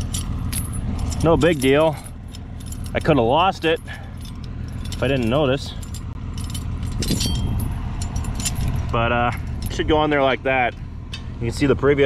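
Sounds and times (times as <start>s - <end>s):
steel chain links clinking: 0.0s - 11.4s.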